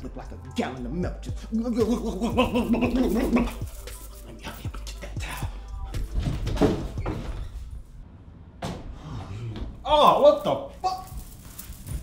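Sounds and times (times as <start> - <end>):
man crying out: 1.5 - 3.7
bumps and door knocks: 6.0 - 7.5.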